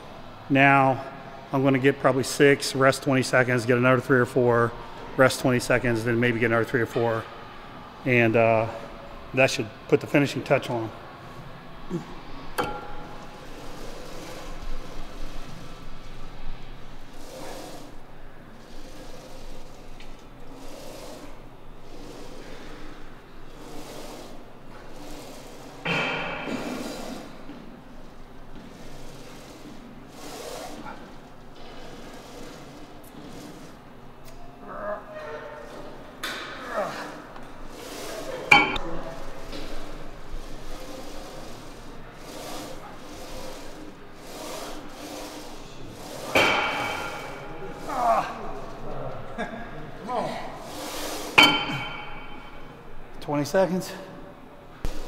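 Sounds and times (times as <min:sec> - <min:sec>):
weight stack clinking: 0:12.6 - 0:14.2, 0:38.5 - 0:39.0, 0:51.0 - 0:52.7
sharp metal clank: 0:38.5 - 0:38.8, 0:51.4 - 0:52.5.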